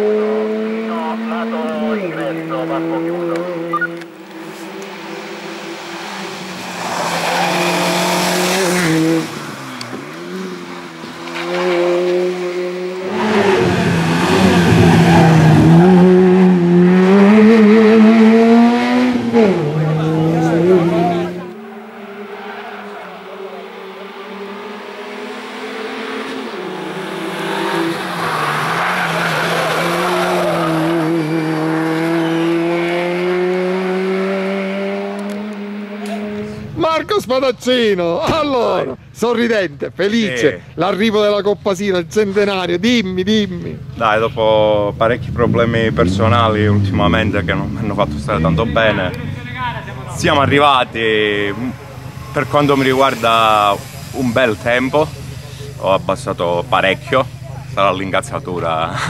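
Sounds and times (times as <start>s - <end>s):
racing car engine revving: 0.0s - 37.0s, 42.2s - 59.0s.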